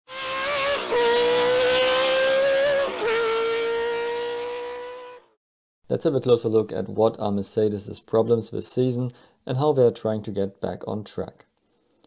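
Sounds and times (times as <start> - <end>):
racing car engine at high revs: 0.1 - 5.3.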